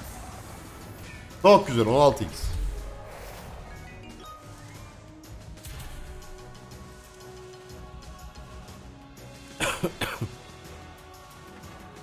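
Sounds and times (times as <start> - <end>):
slot game background music: 0.0 - 12.0.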